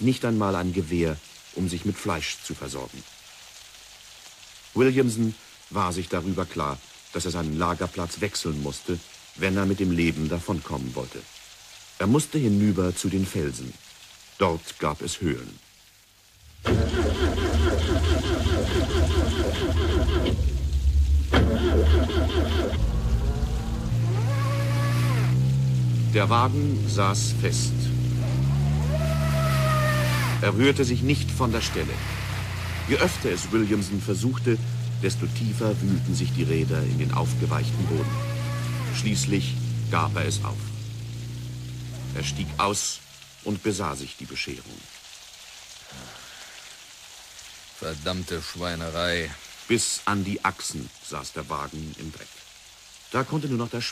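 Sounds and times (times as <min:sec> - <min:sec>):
steady rain falling: 0:00.0 - 0:53.9
car engine revving: 0:16.5 - 0:43.6
wheels spinning in mud: 0:16.6 - 0:44.0.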